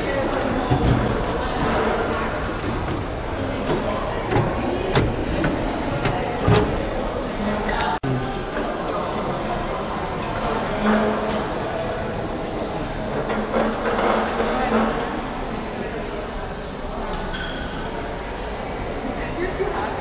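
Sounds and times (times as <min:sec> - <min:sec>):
busy background noise: 0:00.0 - 0:20.0
metal toggle levers clicking: 0:03.6 - 0:07.0.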